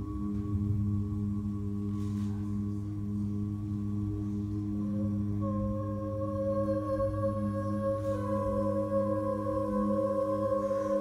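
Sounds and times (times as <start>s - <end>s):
a cappella ensemble holding chord: 4.2s - 11.0s
higher voice singing: 5.4s - 11.0s.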